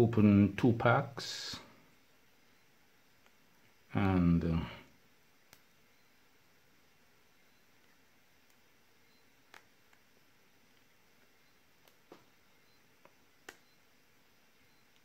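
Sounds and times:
faint clicks of battery cells: 0:02.6 - 0:04.1, 0:05.3 - 0:06.2, 0:07.6 - 0:13.9, 0:14.6 - 0:15.0.

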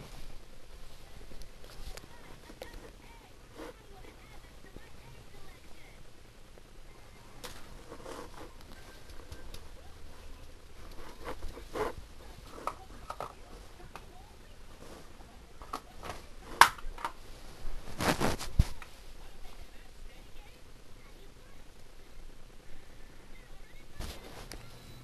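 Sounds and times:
handling rustles and clicks: 0:10.3 - 0:14.1.

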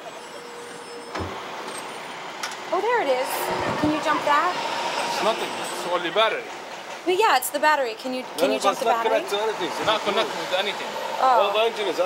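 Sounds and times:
traffic noise: 0:00.0 - 0:12.0.

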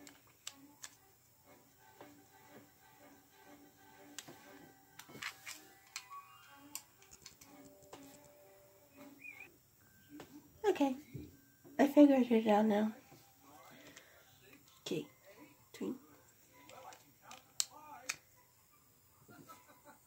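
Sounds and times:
faint background music: 0:00.0 - 0:20.0.

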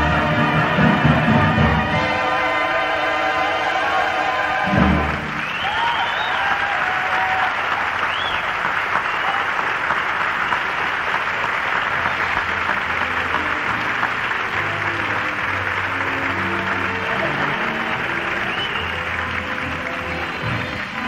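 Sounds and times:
orchestra playing softly: 0:00.0 - 0:08.0, 0:08.7 - 0:21.0
audience applauding and cheering: 0:00.0 - 0:21.0
whistles: 0:05.3 - 0:06.7, 0:08.0 - 0:09.6, 0:10.4 - 0:10.8, 0:11.8 - 0:12.4, 0:18.4 - 0:19.1.

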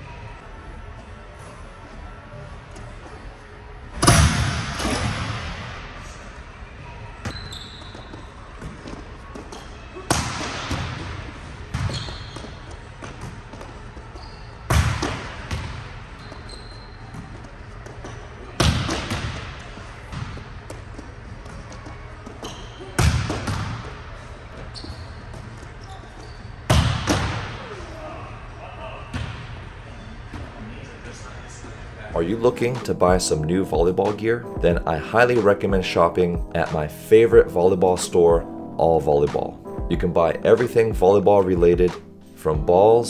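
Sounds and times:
volleyball bouncing on court floor: 0:04.0 - 0:05.9, 0:07.2 - 0:27.7.

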